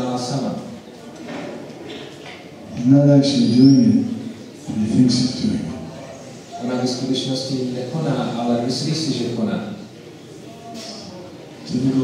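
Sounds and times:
faint room noise: 0.0s - 12.0s
man speaking: 2.7s - 9.9s, 11.6s - 12.0s.

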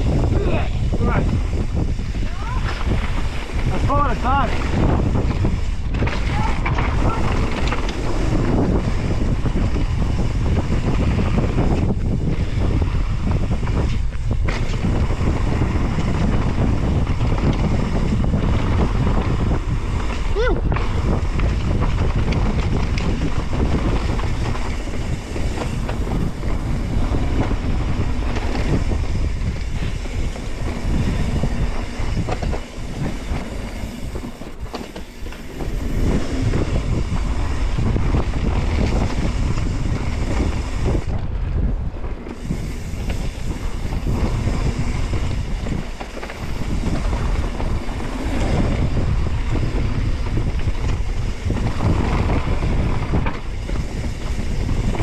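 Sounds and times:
tyres rolling over dirt trail: 0.0s - 55.0s
wind buffeting microphone: 0.0s - 55.0s.

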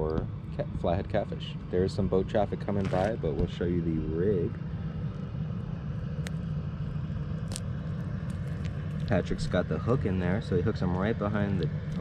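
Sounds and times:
boat motor rumbling: 0.0s - 12.0s.

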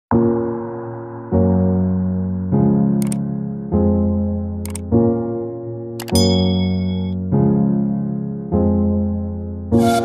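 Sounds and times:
mouse click effects: 3.0s - 3.2s, 4.6s - 4.9s, 6.0s - 6.2s
bell-like ding: 6.1s - 7.2s.

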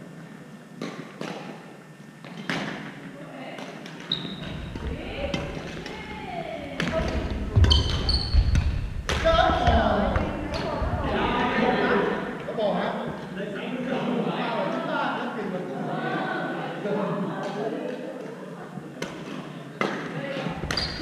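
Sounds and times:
voices in a hall: 0.0s - 21.0s
shoes squeaking on court: 4.0s - 5.8s, 6.9s - 8.9s, 20.4s - 21.0s.

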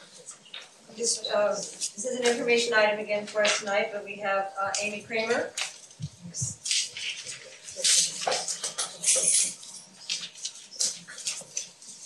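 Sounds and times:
papers rustling and shuffling: 4.8s - 12.0s.

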